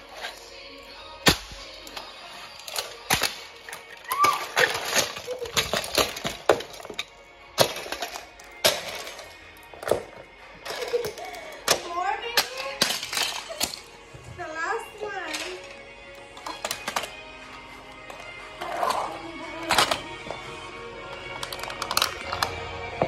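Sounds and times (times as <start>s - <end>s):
plastic toy cars cracking: 1.2s - 14.0s, 15.3s - 20.5s, 21.1s - 22.8s.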